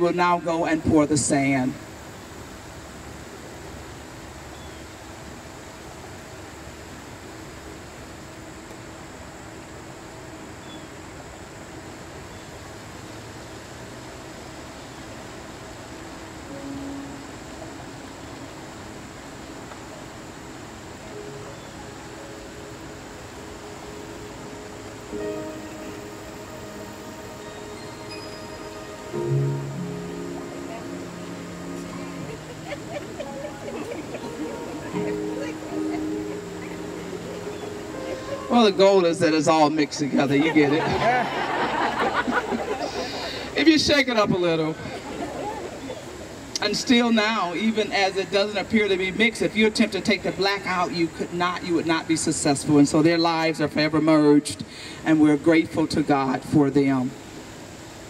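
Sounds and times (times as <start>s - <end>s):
steady hiss: 0.0s - 58.0s
soft instrumental music: 16.4s - 19.7s, 20.9s - 39.4s.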